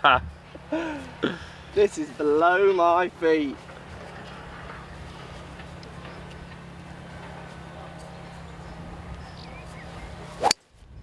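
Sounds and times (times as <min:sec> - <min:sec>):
low outdoor background noise: 0:00.0 - 0:11.0
golf club striking ball: 0:10.3 - 0:10.6.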